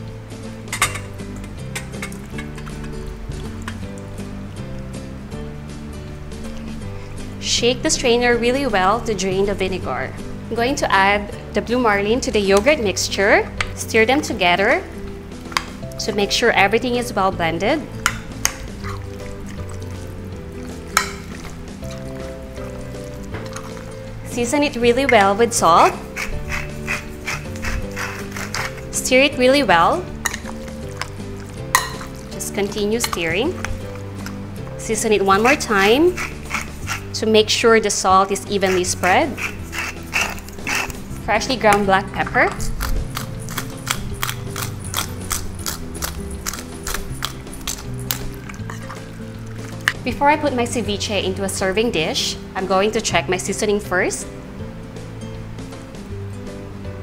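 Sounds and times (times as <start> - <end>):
background music: 0.0 - 57.0
glass bowl clinking on colander: 31.7 - 32.2.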